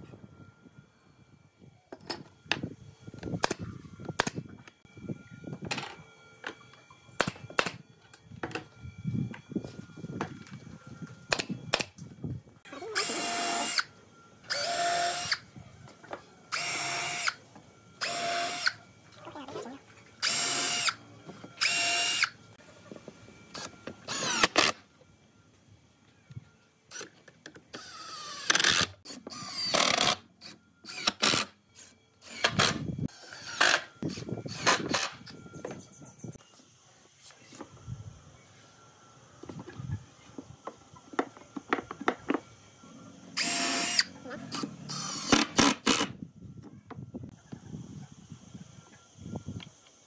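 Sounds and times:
cordless drill driving screws into wood: 43.4s - 46.1s.

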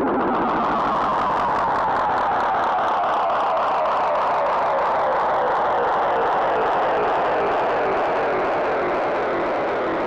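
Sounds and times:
fluttering distorted electronic noise: 0.0s - 10.0s.

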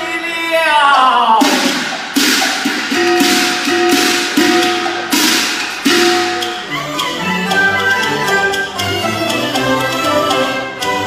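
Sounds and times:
held instrumental note: 1.4s - 11.0s
ringing percussion strikes: 1.4s - 11.0s.

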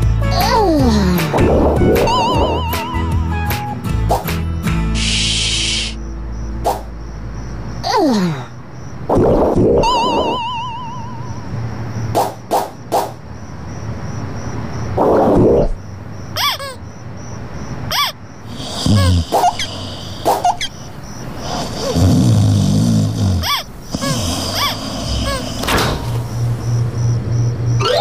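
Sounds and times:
soft background music: 0.0s - 7.8s
wobbling warble: 1.4s - 2.9s, 9.1s - 11.3s, 27.8s - 28.0s
cartoon snores: 18.5s - 20.7s, 21.3s - 26.2s.

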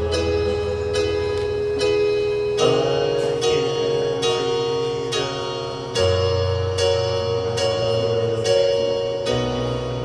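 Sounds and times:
digital keyboard sustained chords: 0.0s - 10.0s.

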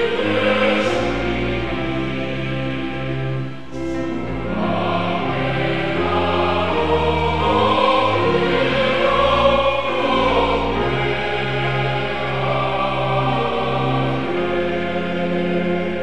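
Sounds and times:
congregation singing a hymn: 0.0s - 16.0s.

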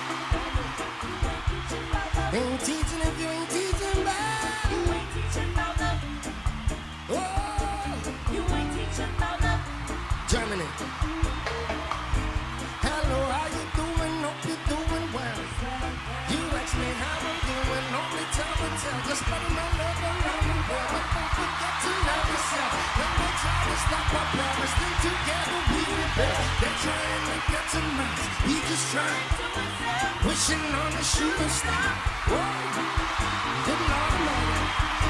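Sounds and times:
live reggae band playing: 0.0s - 35.0s
person singing: 1.6s - 6.4s, 7.1s - 11.9s, 12.8s - 35.0s.

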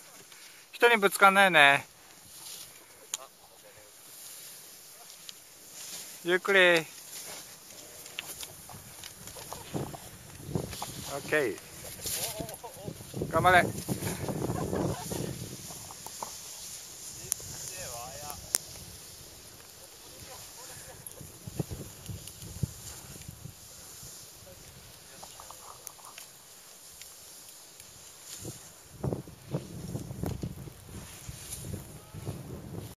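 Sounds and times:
people calling and talking: 0.0s - 28.8s
steady hiss: 0.0s - 33.0s.

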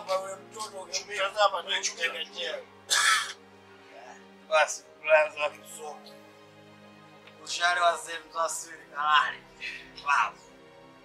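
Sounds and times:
man speaking: 0.0s - 2.6s, 4.5s - 6.2s, 7.4s - 10.4s
low background music: 0.0s - 11.0s.

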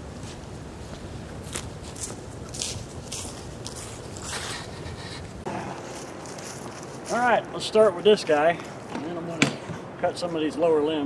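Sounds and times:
footsteps on dry leaves: 0.0s - 8.9s.

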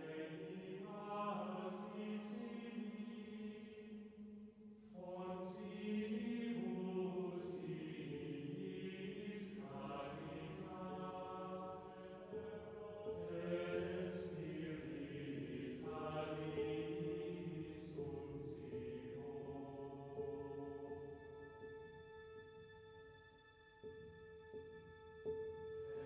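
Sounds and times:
voices singing slow chant: 0.0s - 21.2s.

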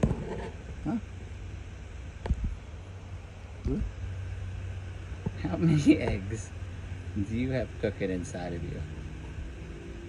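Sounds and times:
man saying huh: 0.8s - 1.1s, 3.6s - 3.9s.

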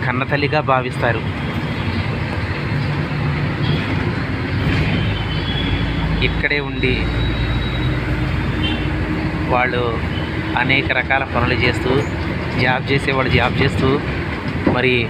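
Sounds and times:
vehicle engine and road rumble: 0.0s - 15.0s.

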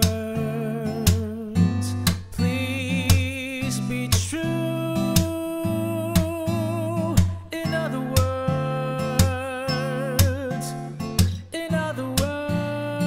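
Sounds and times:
fingerpicked acoustic guitar: 0.0s - 13.0s
person singing with vibrato: 0.0s - 13.0s.

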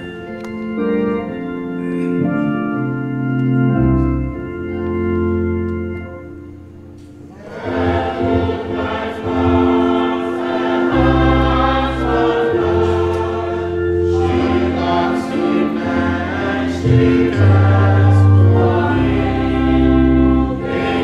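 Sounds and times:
congregation singing a hymn: 7.2s - 21.0s
instrumental accompaniment with deep bass: 8.2s - 21.0s.

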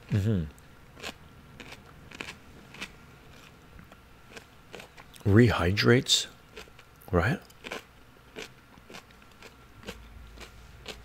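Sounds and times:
person chewing crunchy food: 1.0s - 5.2s, 6.4s - 11.0s.

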